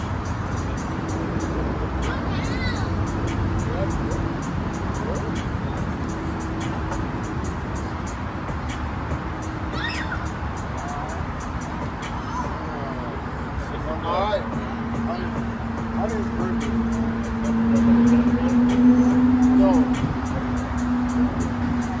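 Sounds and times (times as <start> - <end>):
music: 0.0 - 13.1, 14.0 - 22.0
distant voices: 0.0 - 22.0
traffic-like noise: 0.0 - 22.0.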